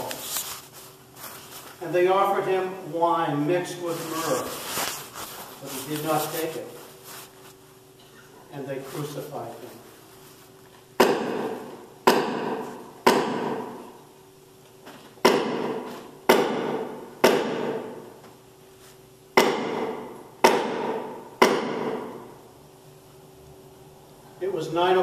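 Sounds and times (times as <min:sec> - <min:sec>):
hammer striking wooden block: 0:11.0 - 0:13.7, 0:15.2 - 0:17.9, 0:19.4 - 0:22.1.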